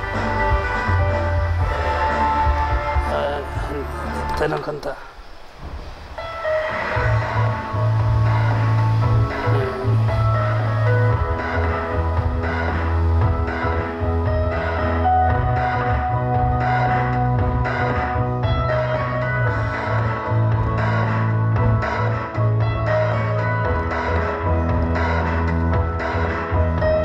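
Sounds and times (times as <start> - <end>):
deep bass notes: 0.0 - 4.7, 5.6 - 27.0
music over pa system: 0.0 - 5.1, 5.8 - 27.0.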